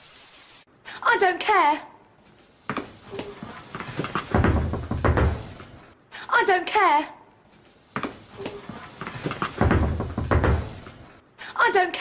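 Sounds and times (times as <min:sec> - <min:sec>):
hand banging on wooden door: 0:04.3 - 0:05.5, 0:09.5 - 0:10.8.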